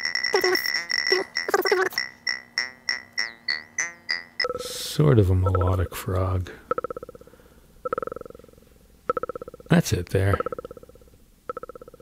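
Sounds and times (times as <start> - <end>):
croaky synth notes: 0.0 - 5.9, 6.7 - 12.0
steady high synth tone: 0.0 - 5.9.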